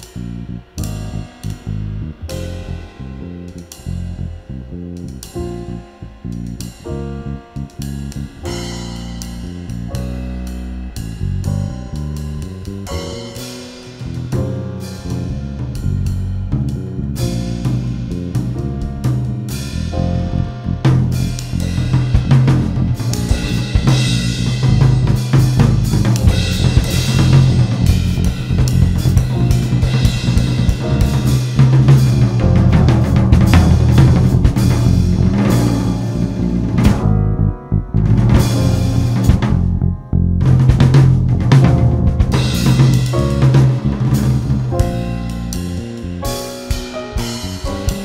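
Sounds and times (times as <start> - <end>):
drum kit: 0.0 - 48.0
jazz fusion band playing: 0.0 - 48.0.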